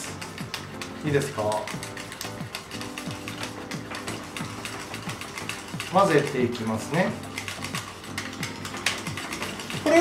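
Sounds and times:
brush scraping a metal bowl: 0.0 - 10.0.

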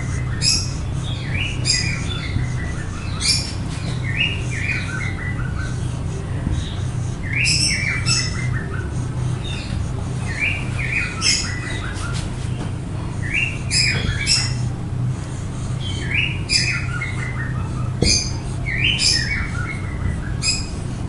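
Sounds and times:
bird chirping: 0.1 - 5.9, 6.6 - 12.6, 13.2 - 14.7, 15.8 - 20.8.

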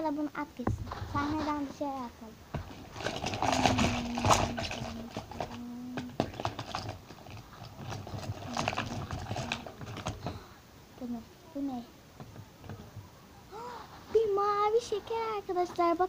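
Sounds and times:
low steady hum: 0.0 - 16.0
plastic packaging crinkling: 2.6 - 10.4.

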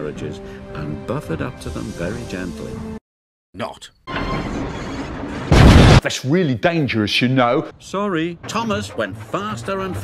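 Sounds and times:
loud crash boom: 4.5 - 6.1.

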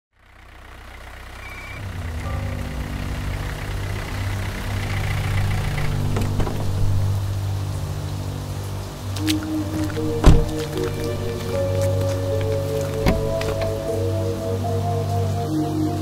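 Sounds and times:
vehicle engine idling: 0.1 - 16.0.

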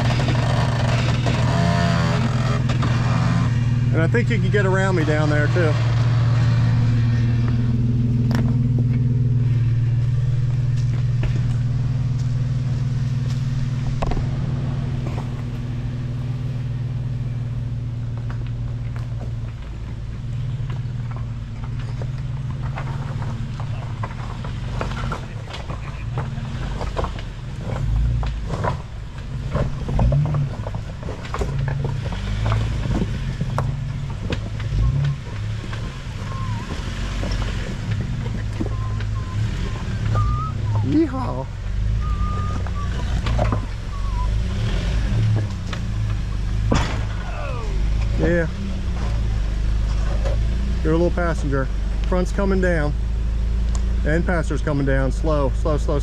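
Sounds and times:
engine running slowly: 0.0 - 56.0
tires thumping over rocks: 0.0 - 56.0.

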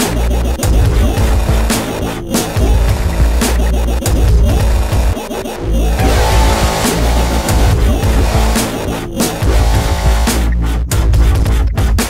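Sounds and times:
heavy synth bass: 5.7 - 10.8
gliding synth tones: 5.8 - 10.4
drum hits: 6.0 - 10.4.

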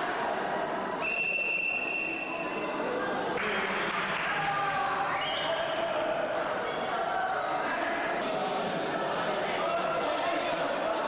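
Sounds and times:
whistle long steady blast: 1.0 - 2.6.

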